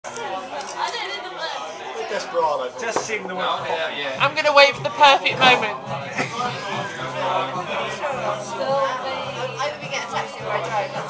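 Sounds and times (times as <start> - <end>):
people talking over one another: 0.1 - 11.0.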